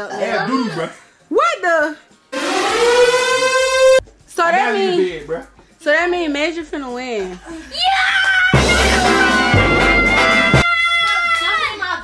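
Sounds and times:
siren-like tone: 2.4s - 4.0s.

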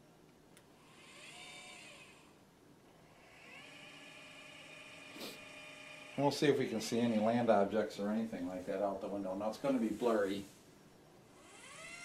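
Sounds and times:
motors whining: 0.8s - 2.4s, 3.0s - 7.5s, 11.3s - 12.0s.

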